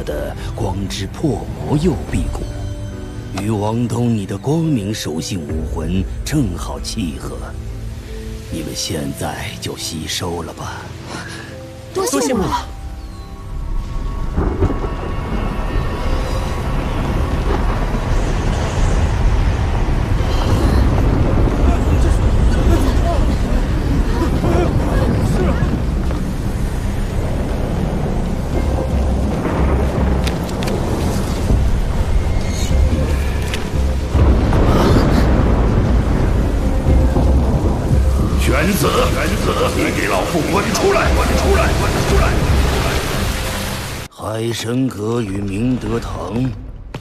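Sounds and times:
thunder rumbling: 0:13.5 - 0:44.1.

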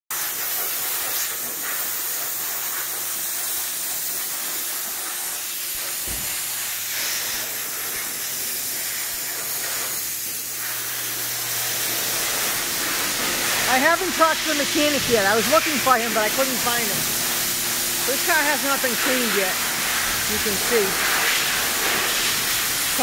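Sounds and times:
water spraying from hose: 0:00.1 - 0:23.0.

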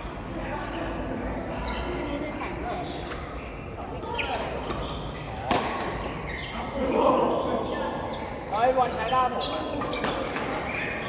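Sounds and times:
racket smacking shuttlecock: 0:05.4 - 0:06.2.

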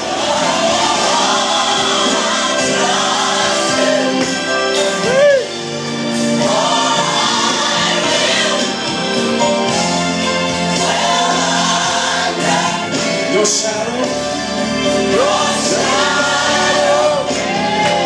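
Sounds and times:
gospel worship singing: 0:00.0 - 0:18.0.

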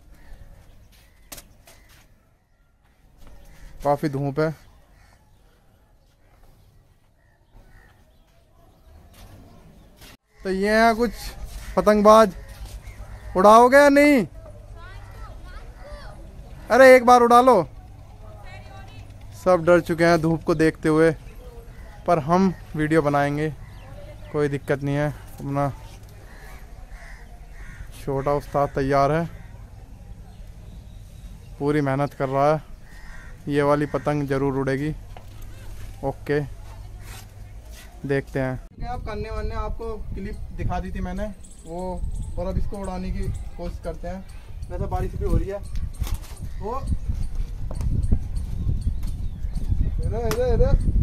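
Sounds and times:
faint short bird calls: 0:00.1 - 0:03.8, 0:06.2 - 0:08.4.

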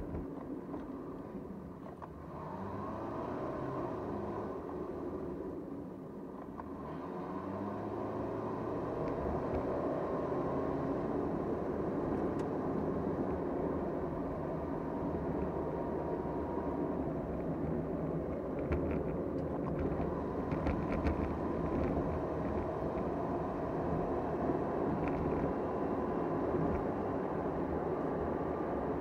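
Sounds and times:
road noise: 0:00.0 - 0:29.0
car engine accelerating: 0:01.8 - 0:05.6.

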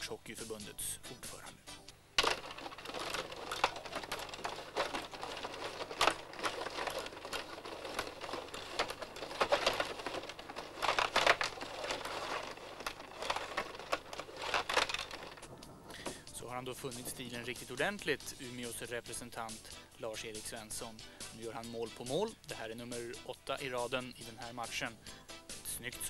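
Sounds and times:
table hockey game clattering: 0:02.2 - 0:16.2.

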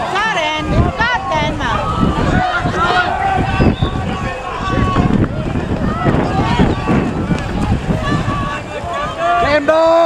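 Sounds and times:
people shouting and calling: 0:00.0 - 0:10.0
wind buffeting microphone: 0:00.0 - 0:10.0
loud held shout: 0:00.6 - 0:10.0.

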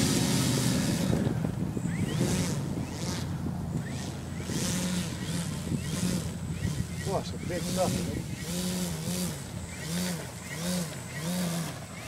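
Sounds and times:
wind gusting across microphone: 0:00.0 - 0:11.6.

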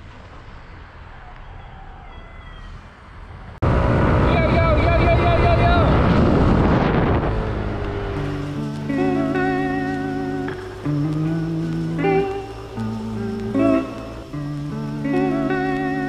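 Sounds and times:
wind buffeting microphone: 0:03.6 - 0:14.9
faint background noise: 0:08.0 - 0:16.0.

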